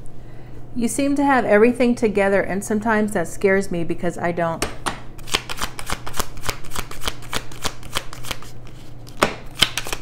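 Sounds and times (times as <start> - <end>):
cards being shuffled: 5.2 - 10.0.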